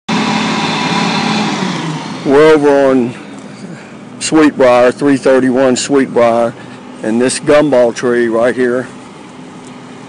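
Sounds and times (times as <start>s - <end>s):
engine running steadily: 0.1s - 10.0s.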